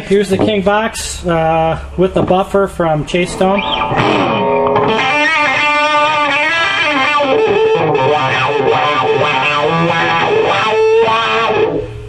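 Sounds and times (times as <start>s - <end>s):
distorted electric guitar with wah: 3.2s - 12.0s.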